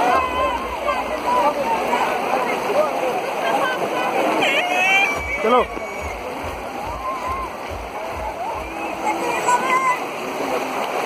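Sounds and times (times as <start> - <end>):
feet splashing through water: 0.0 - 11.0
flowing water: 0.0 - 11.0
voices: 0.0 - 11.0.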